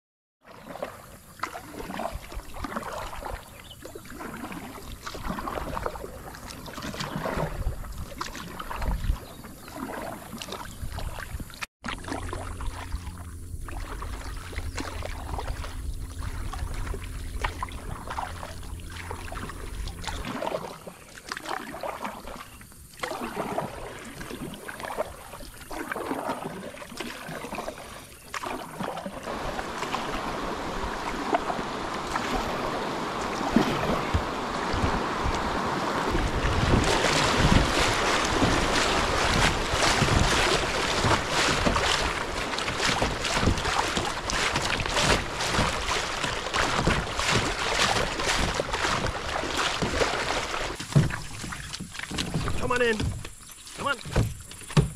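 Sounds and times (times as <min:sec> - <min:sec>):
kayak paddle strokes: 0:00.4 - 0:54.9
river water splashing against hull: 0:00.4 - 0:54.9
water lapping: 0:00.4 - 0:54.9
wind on microphone: 0:04.7 - 0:09.6, 0:10.4 - 0:11.6, 0:12.7 - 0:20.4, 0:29.2 - 0:50.6.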